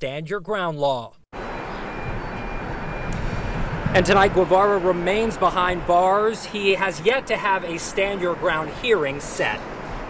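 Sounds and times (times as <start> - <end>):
street traffic noise: 1.4 - 10.0.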